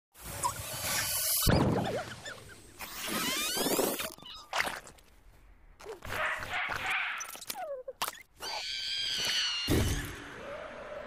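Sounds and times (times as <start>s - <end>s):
cartoon squeaks and squeals: 0.4s - 4.9s, 5.8s - 10.1s.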